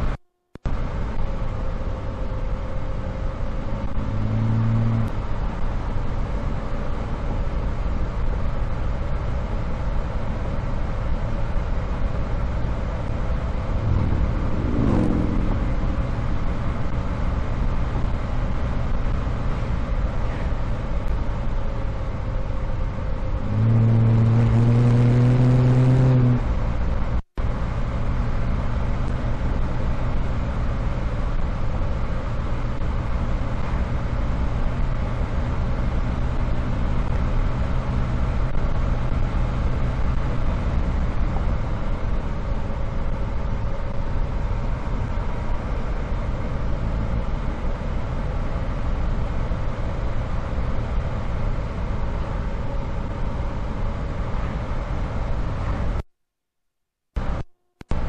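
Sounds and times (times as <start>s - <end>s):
car engine running: 0.0s - 56.0s
road and wind noise: 0.0s - 56.0s, 57.2s - 58.0s
steady droning hum: 0.8s - 24.8s.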